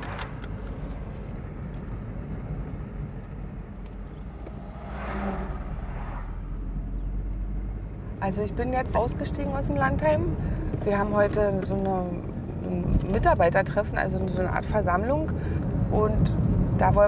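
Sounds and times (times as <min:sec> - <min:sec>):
car engine and tyres rumbling: 0:00.0 - 0:17.0
rush of road noise: 0:00.0 - 0:17.0.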